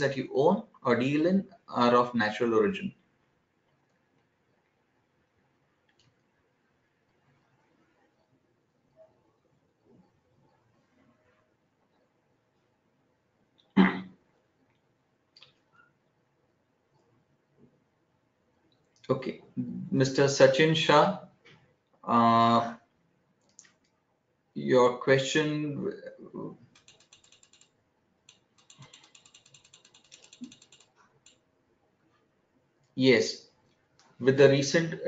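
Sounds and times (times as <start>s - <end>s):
person clearing throat: 13.8s - 14.1s
mouse scroll wheel clicking: 26.6s - 31.4s.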